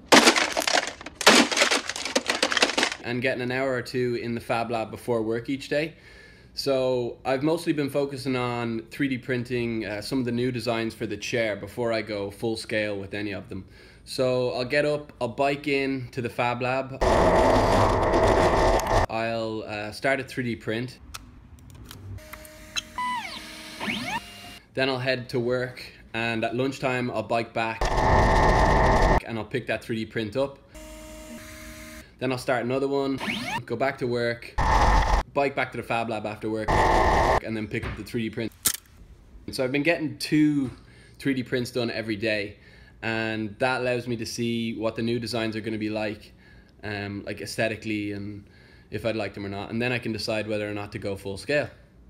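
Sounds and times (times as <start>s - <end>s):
loud crashes of smashing: 0.0s - 3.0s
rattling clatter: 0.1s - 3.0s
stepper motors whining: 17.0s - 19.1s, 27.8s - 29.2s, 34.6s - 35.2s, 36.7s - 37.4s.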